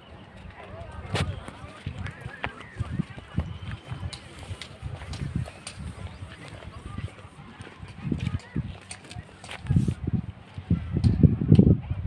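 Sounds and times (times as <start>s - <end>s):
footsteps on paved path: 0.0s - 11.7s.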